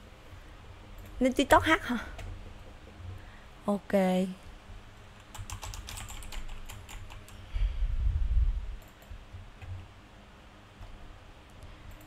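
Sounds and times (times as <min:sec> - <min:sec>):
typing clicks: 0:05.2 - 0:07.4.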